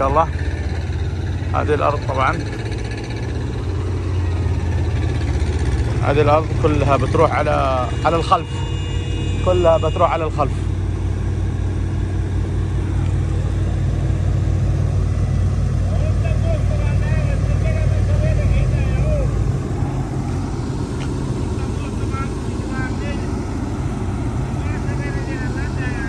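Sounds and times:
excavator diesel engine running: 0.0 - 26.0.

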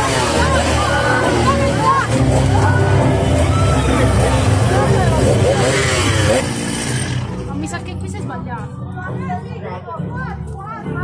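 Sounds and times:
chainsaw engine revving: 0.0 - 7.8
people's voices: 0.0 - 11.0.

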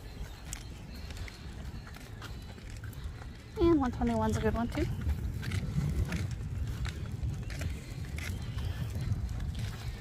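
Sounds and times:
stroller wheels rolling on asphalt: 0.0 - 10.0.

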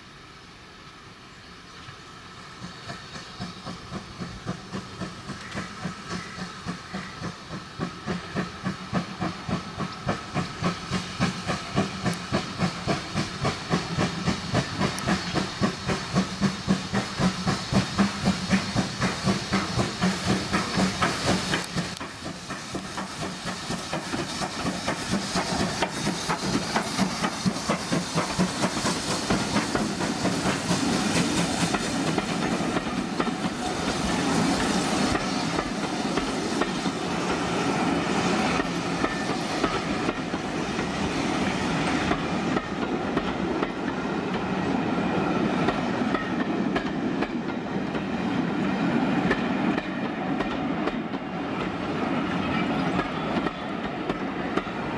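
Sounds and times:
train coaches passing: 0.0 - 54.9
steam locomotive exhaust chuffing: 1.8 - 54.9.

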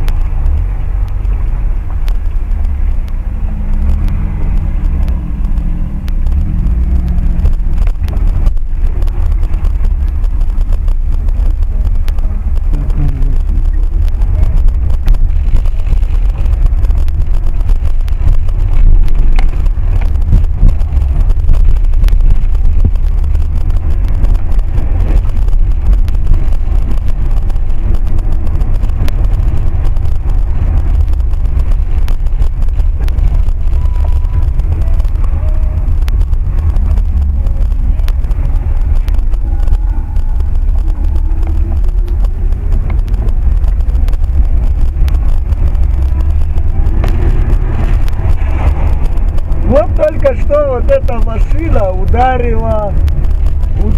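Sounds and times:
car engine and road rumble: 0.0 - 53.9.

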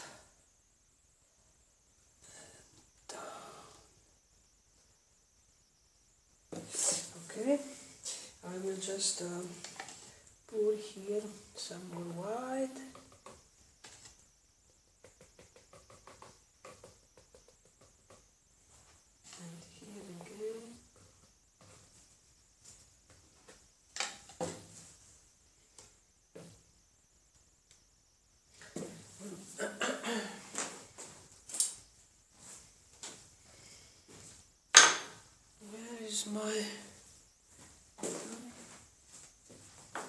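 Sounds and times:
hard objects knocking and clinking: 34.8 - 35.2.

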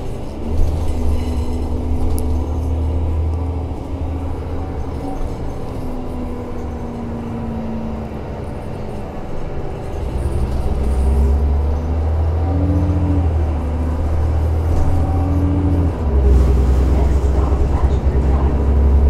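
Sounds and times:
bus engine droning: 0.0 - 19.0.

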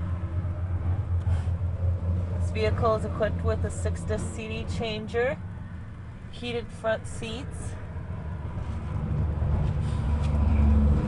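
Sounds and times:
steady low hum in vehicle cab: 0.0 - 11.0.

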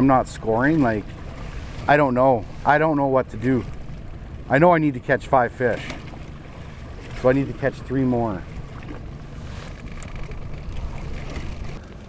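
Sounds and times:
wind rumbling on microphone: 5.9 - 12.0.

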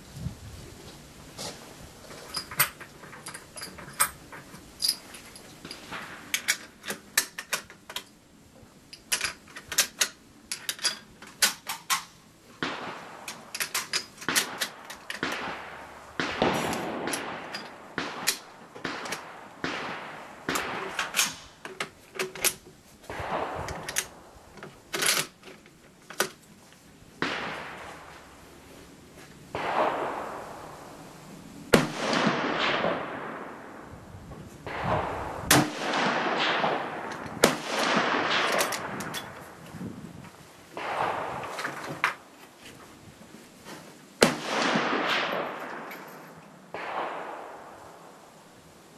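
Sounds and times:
gunshots: 12.6 - 13.4, 14.2 - 21.5, 23.1 - 24.2, 27.2 - 28.1, 29.5 - 30.8, 31.7 - 33.7, 34.6 - 39.1, 40.8 - 41.6, 44.2 - 45.9, 46.7 - 47.8.

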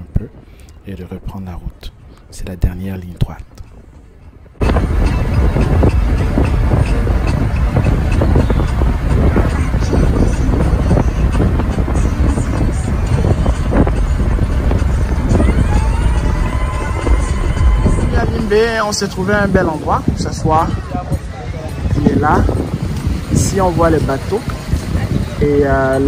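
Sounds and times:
car road and wind noise: 0.0 - 26.0
music playing: 3.6 - 26.0.

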